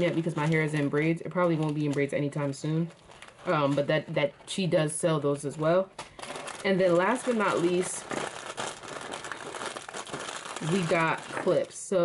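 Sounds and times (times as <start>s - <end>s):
packaging crinkling: 0.0s - 4.5s, 6.0s - 11.8s.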